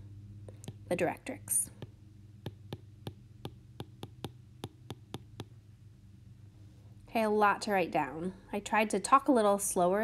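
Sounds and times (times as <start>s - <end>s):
stylus tapping on tablet screen: 0.5s - 1.0s, 1.7s - 5.6s.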